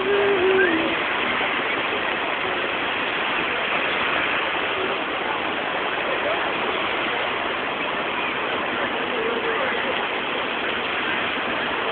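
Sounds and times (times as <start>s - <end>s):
fountain water splashing: 0.0s - 11.9s.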